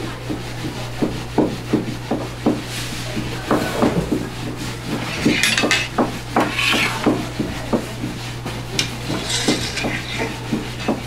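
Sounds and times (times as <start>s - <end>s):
steady low hum: 0.0s - 11.0s
irregular knocks: 1.0s - 8.2s
soft scraping: 2.6s - 7.8s.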